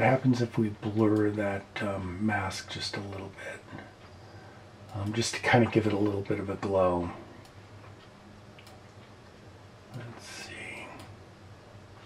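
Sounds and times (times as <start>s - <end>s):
low room hiss: 0.0s - 12.0s
computer mouse clicks: 7.4s - 9.2s.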